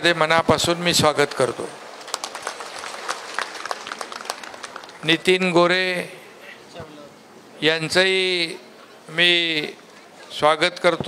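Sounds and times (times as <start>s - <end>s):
small group applauding: 1.9s - 5.3s.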